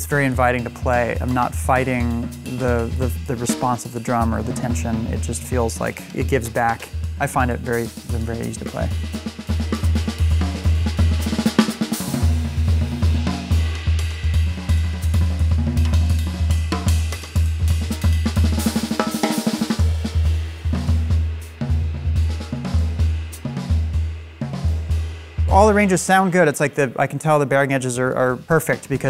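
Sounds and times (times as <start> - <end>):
drums played with sticks: 0.0 - 29.0
ride and hi-hat cymbals: 0.0 - 29.0.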